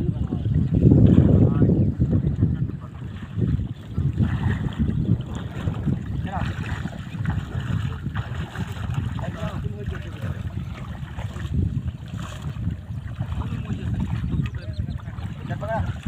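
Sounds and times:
people wading through water: 0:00.0 - 0:16.0
wind rumbling on microphone: 0:00.0 - 0:16.0.

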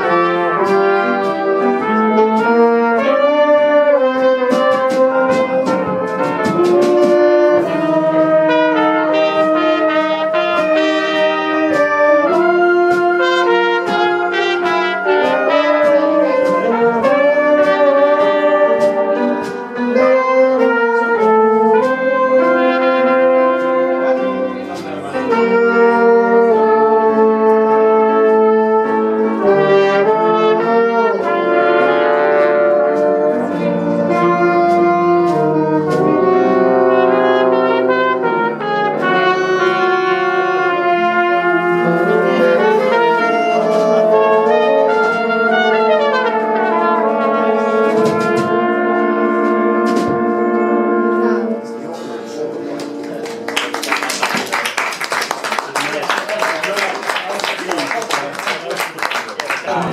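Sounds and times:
drums: 0:00.0 - 0:26.2, 0:27.4 - 0:50.7
jazz horn section playing: 0:00.0 - 0:59.9
piano: 0:00.0 - 0:59.9
audience applause: 0:53.0 - 0:59.9.

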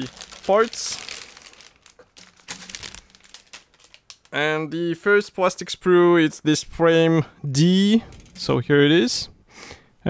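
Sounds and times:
plastic bag crinkling: 0:00.0 - 0:04.4.

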